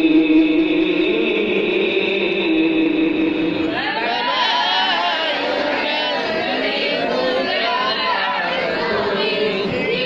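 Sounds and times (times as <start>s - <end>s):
man reciting melodically into microphone: 0.0s - 3.7s.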